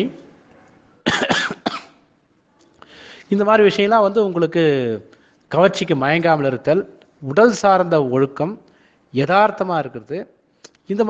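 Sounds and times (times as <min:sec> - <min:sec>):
person coughing: 0:01.0 - 0:02.0.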